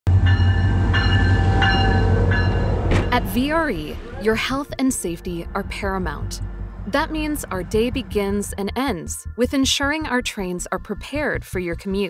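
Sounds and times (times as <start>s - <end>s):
locomotive bell ringing: 0.1s - 8.9s
diesel locomotive engine rumble: 0.1s - 9.4s.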